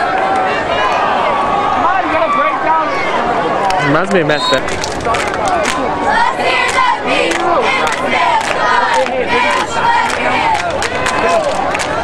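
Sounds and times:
crowd yelling and shouting: 0.0s - 12.0s.

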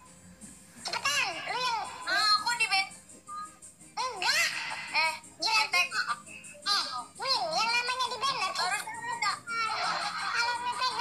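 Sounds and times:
childlike voice talking: 0.9s - 2.9s, 4.0s - 11.0s.

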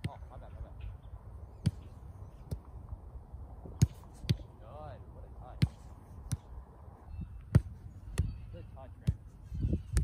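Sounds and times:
soccer ball kicked thuds: 1.6s - 2.7s, 3.6s - 4.5s, 5.4s - 6.5s, 7.4s - 8.4s, 9.0s - 10.0s.

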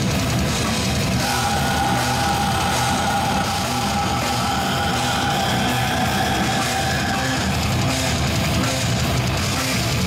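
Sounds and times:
distorted electric guitars: 0.0s - 10.0s
drums: 0.0s - 10.0s
vocalist screaming: 1.1s - 8.2s.

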